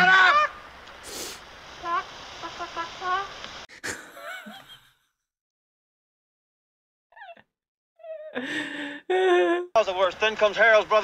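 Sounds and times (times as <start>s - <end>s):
woman laughing: 3.8s - 5.0s, 8.1s - 9.8s.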